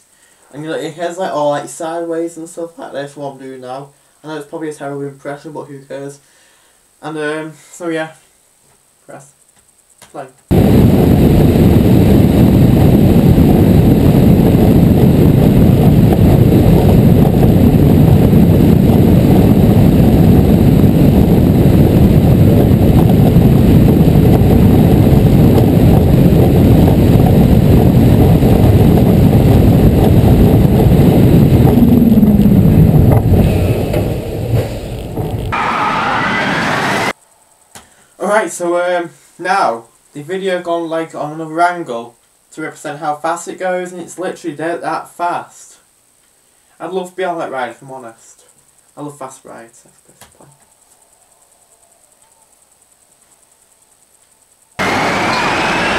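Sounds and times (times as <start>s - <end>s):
wind rushing on microphone: 10.5s - 37.2s
falling tone: 31.4s - 37.2s, 54.8s - 55.9s.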